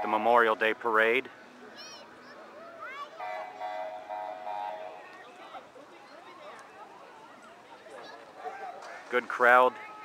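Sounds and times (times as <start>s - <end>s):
faint voices of spectators: 1.3s - 10.0s.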